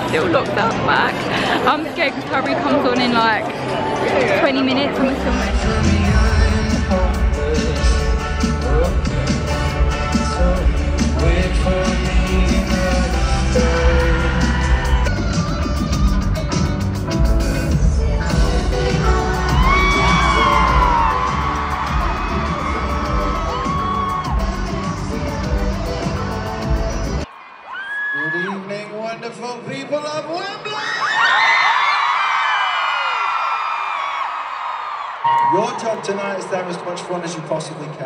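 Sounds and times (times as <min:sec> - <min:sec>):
crowd screaming and cheering: 0:00.0 - 0:16.8, 0:18.3 - 0:28.8, 0:30.5 - 0:38.0
live band playing loudly: 0:04.3 - 0:27.2.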